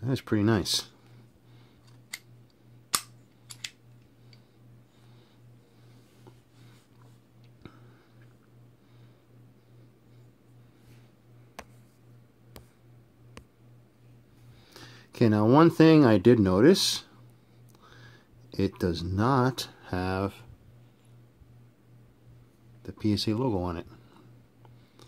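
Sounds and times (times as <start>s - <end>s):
faint low hum: 0.0s - 25.0s
sharp metal clicks: 2.9s - 3.8s.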